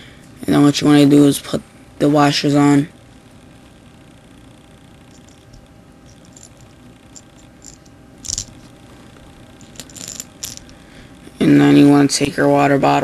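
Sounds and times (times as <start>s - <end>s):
metal washers clicking: 5.1s - 8.6s, 9.6s - 10.8s.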